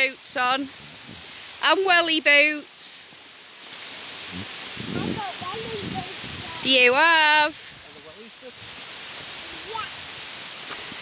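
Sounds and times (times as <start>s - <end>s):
mountain stream rushing: 0.0s - 11.0s.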